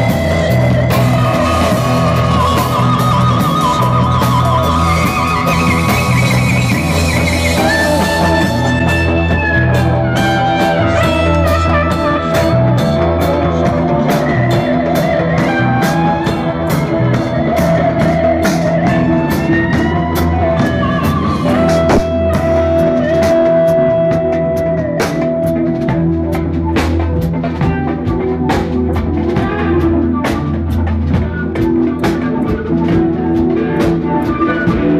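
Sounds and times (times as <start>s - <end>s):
psychedelic rock music: 0.0s - 34.9s.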